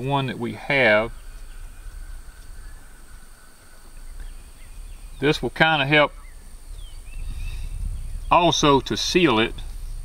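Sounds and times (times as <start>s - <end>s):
faint bird calls: 0.0s - 10.0s
low rumble: 0.0s - 10.0s
steady high whine: 0.0s - 10.0s.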